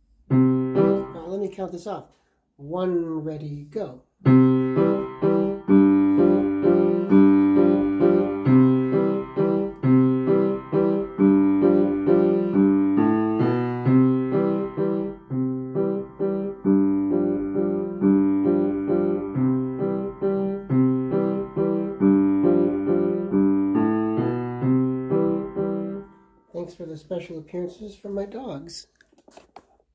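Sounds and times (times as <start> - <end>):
piano repeated chords: 0.0 - 2.0, 4.2 - 26.7.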